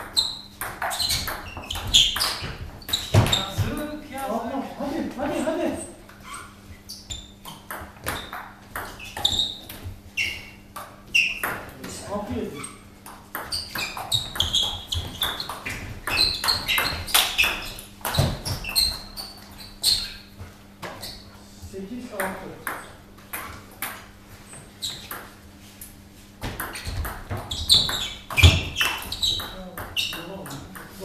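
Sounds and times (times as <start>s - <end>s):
table tennis ball hits: 0.6s - 3.8s, 7.4s - 9.6s, 13.0s - 19.1s, 22.1s - 24.1s, 26.4s - 31.0s.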